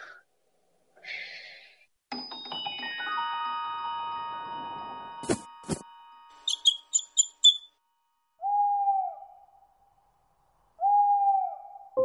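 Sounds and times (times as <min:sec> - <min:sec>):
cartoon bird chirps: 0:06.5 - 0:07.7
cartoon owl hoots: 0:08.4 - 0:09.6, 0:10.8 - 0:12.0.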